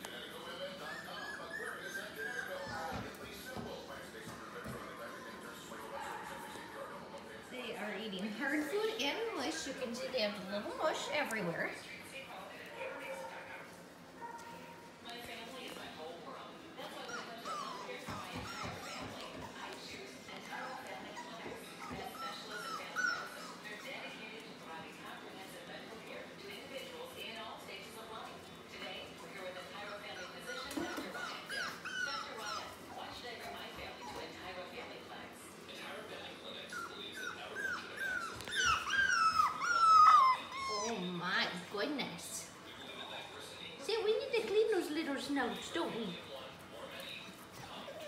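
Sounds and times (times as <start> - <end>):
puppies whining: 0.5 - 7.1, 16.8 - 23.9, 29.6 - 34.6, 36.6 - 41.4, 47.2 - 48.0.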